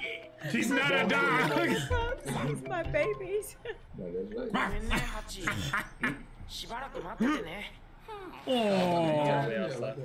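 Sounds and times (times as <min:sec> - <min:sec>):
people laughing: 0:00.6 - 0:02.4.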